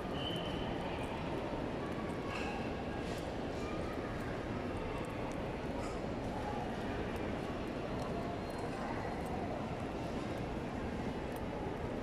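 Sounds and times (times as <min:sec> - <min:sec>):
hubbub of distant voices: 0:00.0 - 0:12.0.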